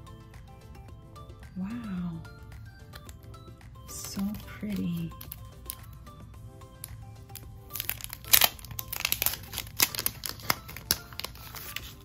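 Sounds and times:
soft background music: 0:00.0 - 0:12.0
sticker packaging crinkling: 0:04.1 - 0:06.0, 0:06.8 - 0:12.0.

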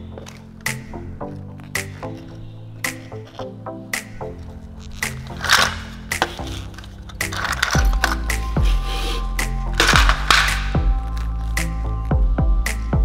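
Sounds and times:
music with deep falling bass hits: 0:03.6 - 0:13.0.

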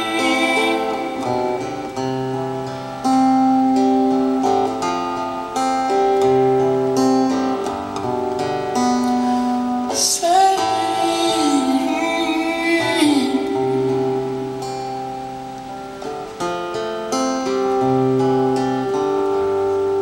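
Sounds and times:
acoustic guitar playing: 0:00.0 - 0:20.0.

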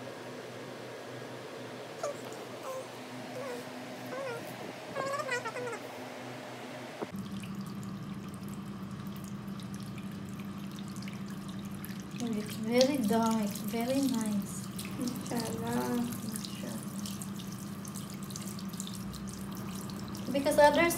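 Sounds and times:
low background hum: 0:00.0 - 0:20.9
wavering high-pitched calls: 0:02.0 - 0:05.9
tap water running into sink: 0:07.1 - 0:20.9.

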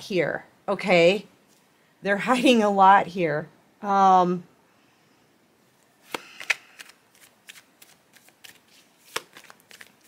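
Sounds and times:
cards being shuffled: 0:06.0 - 0:10.0.

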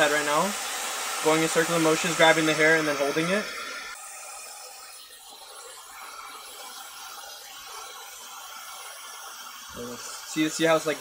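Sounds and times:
hair dryer blowing air: 0:00.0 - 0:11.0.

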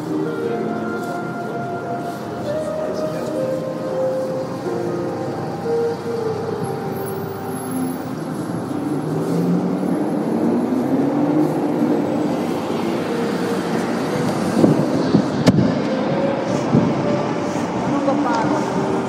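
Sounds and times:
road traffic: 0:00.0 - 0:19.0.

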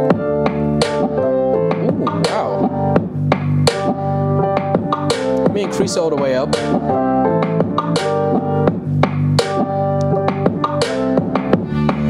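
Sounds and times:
rock song through speakers: 0:00.0 - 0:12.0.

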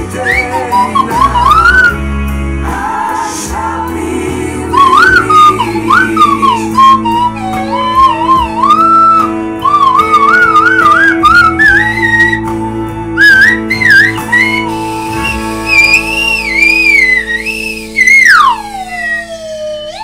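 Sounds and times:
slide whistle melody: 0:00.0 - 0:02.2, 0:04.6 - 0:20.0
band backing track: 0:00.0 - 0:20.0.

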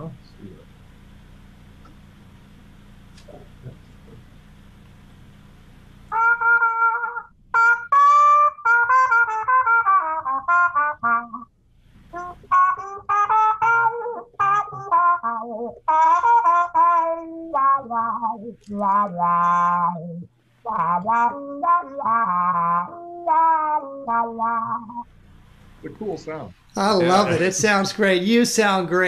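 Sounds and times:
muted trumpet playing jazz: 0:06.1 - 0:11.5, 0:12.1 - 0:25.0.

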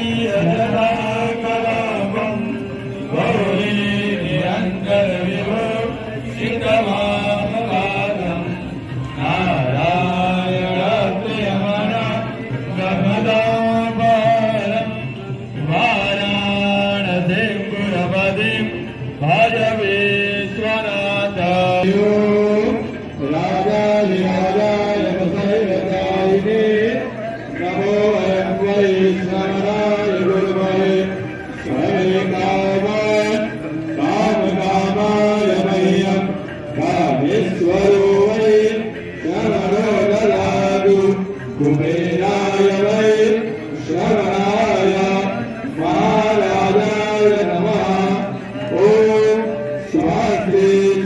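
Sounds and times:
person chanting a hymn: 0:00.0 - 0:51.0.

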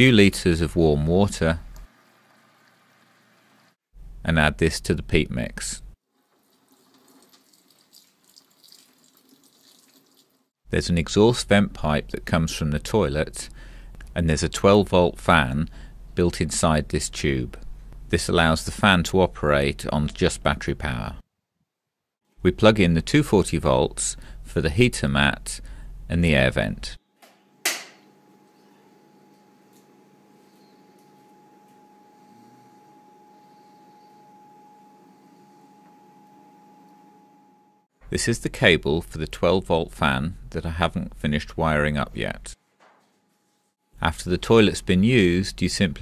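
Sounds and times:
water trickling and splashing: 0:06.1 - 0:10.5
sharp click: 0:27.2 - 0:28.0
electric vent fan humming: 0:27.2 - 0:38.2.

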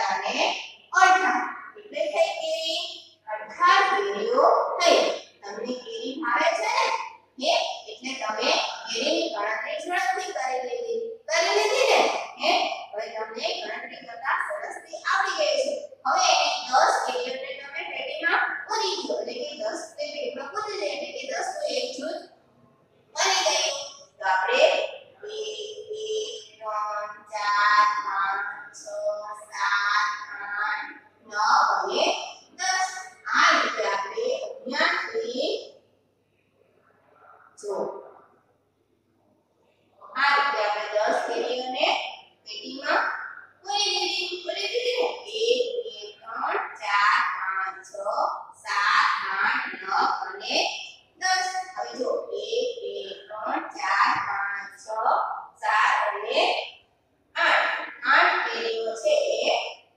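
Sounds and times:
woman talking: 0:00.0 - 0:22.2, 0:23.2 - 0:35.6, 0:37.6 - 0:38.0, 0:40.0 - 0:56.6, 0:57.4 - 0:59.6
woman chanting: 0:40.0 - 0:56.6, 0:57.4 - 0:59.7.

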